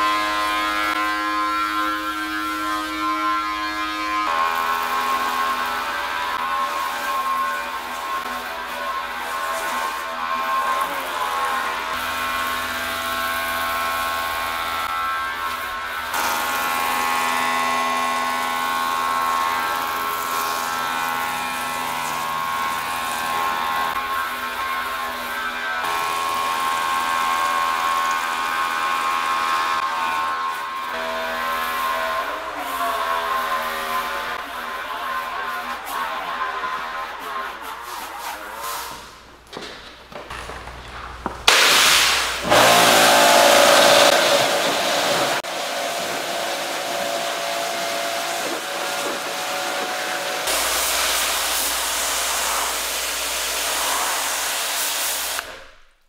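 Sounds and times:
pressure washer jetting water: 41.5 - 55.5.

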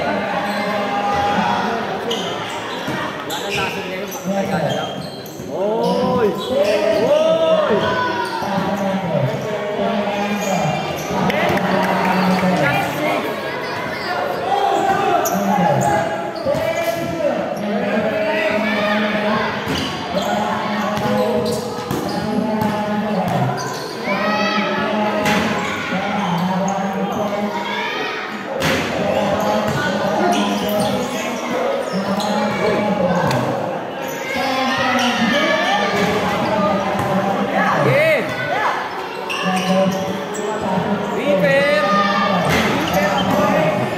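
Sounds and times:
players talking and calling: 0.0 - 43.9.

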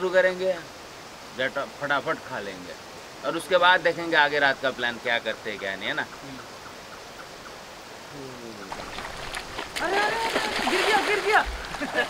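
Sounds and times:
mountain river rushing: 7.6 - 12.0.

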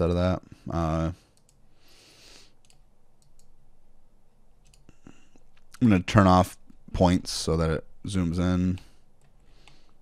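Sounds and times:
computer mouse clicking: 1.4 - 1.6, 2.6 - 3.6, 4.6 - 5.7.

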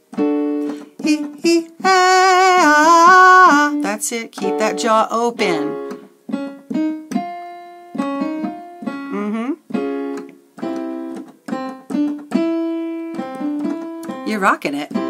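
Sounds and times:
piano notes: 0.0 - 15.0.

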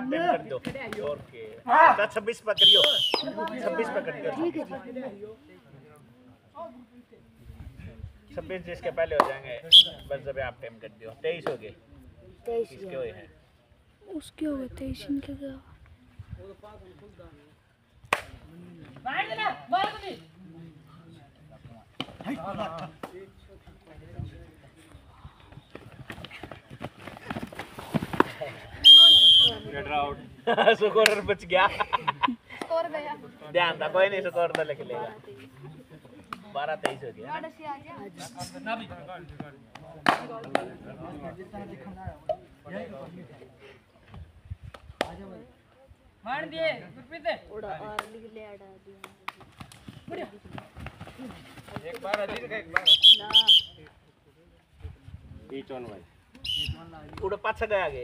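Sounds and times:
referee's whistle blast: 2.6 - 3.4, 9.7 - 10.0, 28.8 - 29.6, 52.8 - 53.8, 56.4 - 56.8
feet stamping and scuffling on dirt: 25.5 - 28.6.

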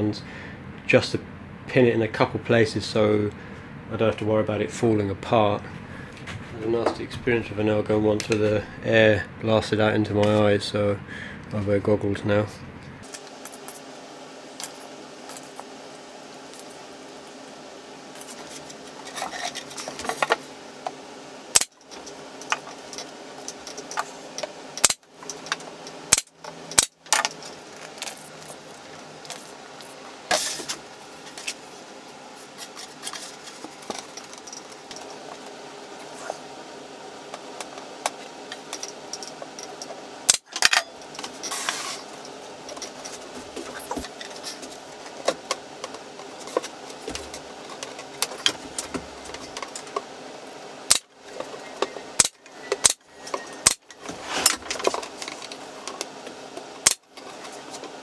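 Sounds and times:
pin nailer firing: 26.1 - 26.9, 52.2 - 53.0.

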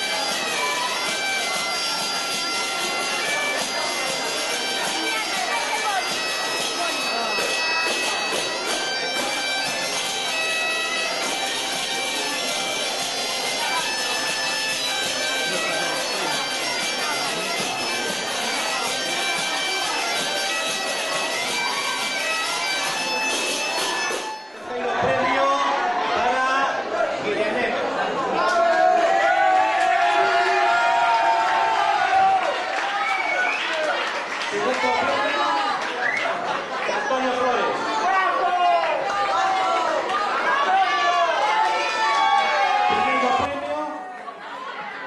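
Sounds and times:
bagpipe tune with drone: 0.0 - 24.7
people talking: 0.0 - 29.2, 33.7 - 45.0.

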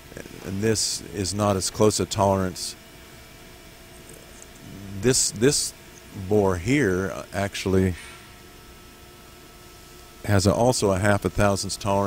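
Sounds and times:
machine shop hum and hiss: 0.0 - 12.0.

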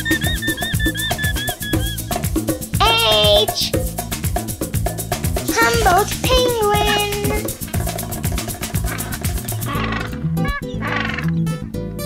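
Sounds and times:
penguin calling: 0.0 - 2.2, 5.5 - 7.6, 8.7 - 11.5
background music: 0.0 - 12.0.

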